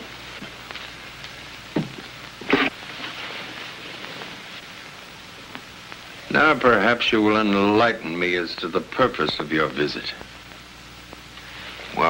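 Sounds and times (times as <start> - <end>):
steady television hiss: 0.0 - 12.0.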